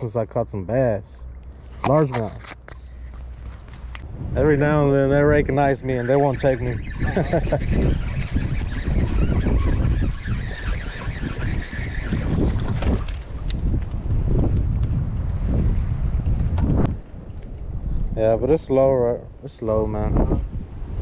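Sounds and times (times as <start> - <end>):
wind buffeting microphone: 3.3 - 21.0
man laughing: 7.0 - 8.0.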